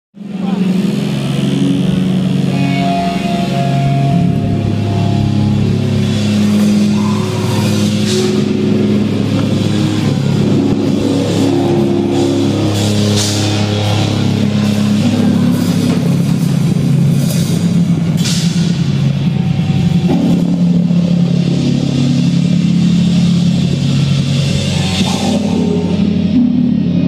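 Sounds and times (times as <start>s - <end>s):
distorted guitar chords: 0.2s - 27.0s
cymbal crashes: 1.0s - 27.0s.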